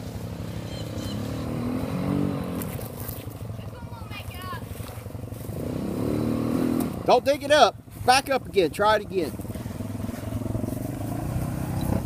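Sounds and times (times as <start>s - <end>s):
atv engine running: 0.0s - 12.0s.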